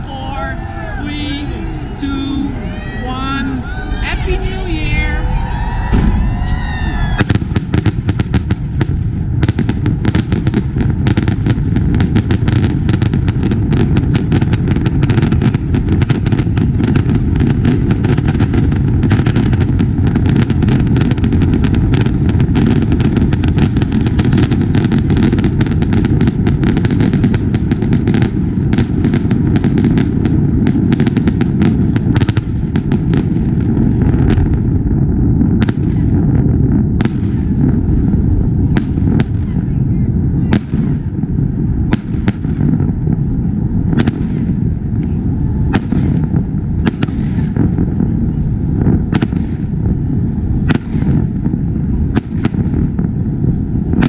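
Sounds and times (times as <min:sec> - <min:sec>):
fireworks bangs and crackling: 0:00.0 - 0:54.0
steady low rumble: 0:00.0 - 0:54.0.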